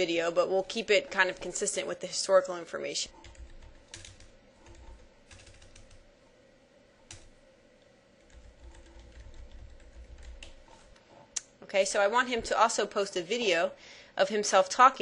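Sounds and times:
keyboard typing clicks: 3.2 - 6.0.

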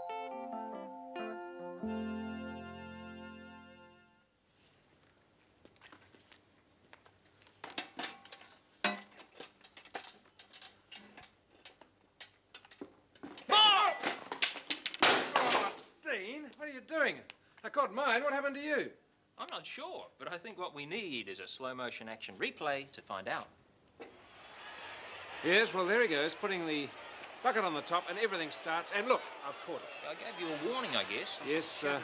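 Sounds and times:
stepladder and props clattering: 7.6 - 11.3
broom dropping on floor: 13.2 - 16.0
loud cry: 13.5 - 14.2, 24.2 - 32.0.

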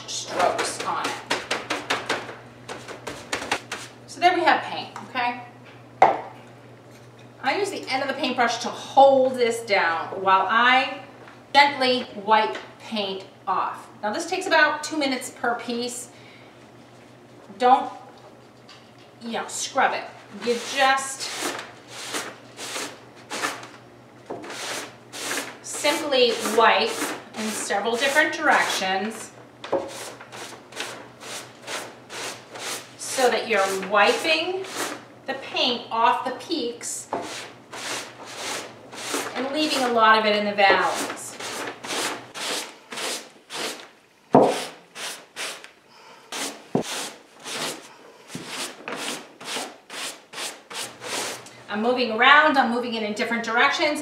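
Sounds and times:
sponge rubbing wet paper: 29.9 - 35.0, 37.2 - 39.9, 40.8 - 43.9, 46.3 - 51.4.

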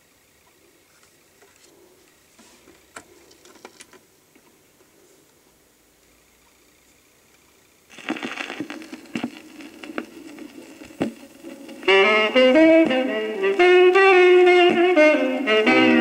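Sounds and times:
record surface crackle: 0.4 - 5.4, 6.0 - 16.0
band instrumental music: 11.8 - 16.0.

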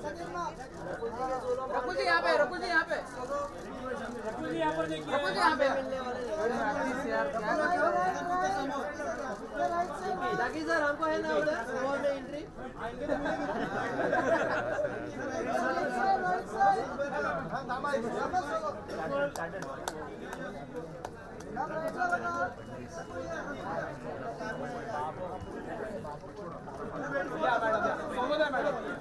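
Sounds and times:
voices chattering: 0.0 - 29.0.

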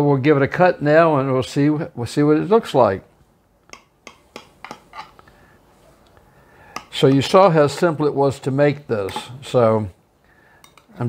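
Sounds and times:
knife tapping against baking dish: 3.7 - 5.1.

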